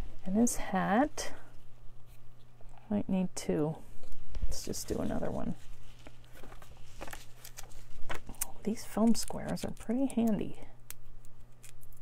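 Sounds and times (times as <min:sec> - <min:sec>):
faint low hum: 0:00.0 - 0:12.0
paper rustling: 0:04.7 - 0:08.4.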